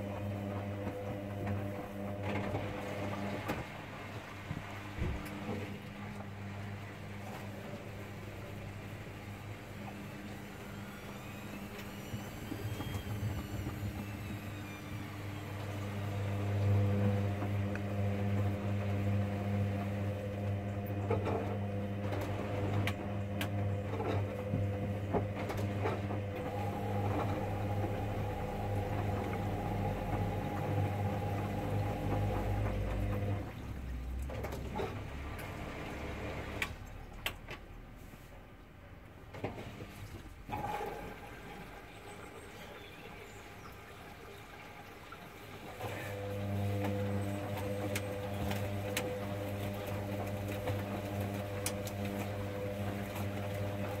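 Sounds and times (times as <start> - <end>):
washing machine motor humming: 0.0 - 38.0, 38.6 - 54.0.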